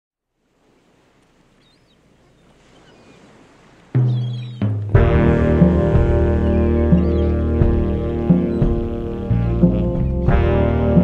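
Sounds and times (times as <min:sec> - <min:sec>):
faint sea surf: 0:00.2 - 0:11.0
faint high bird chirps: 0:01.6 - 0:03.4, 0:04.0 - 0:04.8
low sustained musical note: 0:05.0 - 0:11.0.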